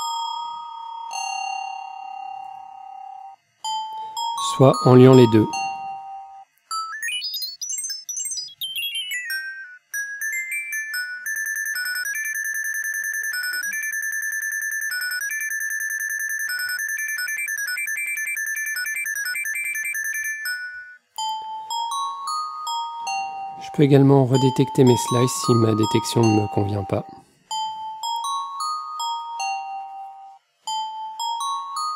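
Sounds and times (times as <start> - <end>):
bell-like electronic tones: 2.7 - 22.6, 23.3 - 28.6.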